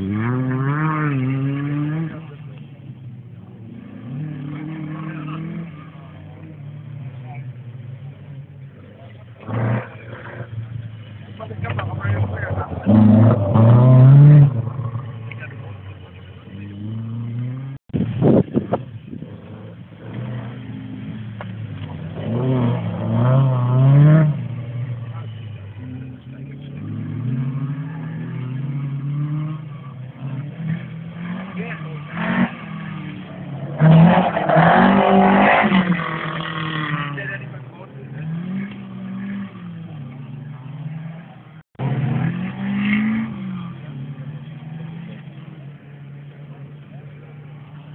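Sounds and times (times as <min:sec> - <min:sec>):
rally car engine revving: 0:00.0 - 0:47.9.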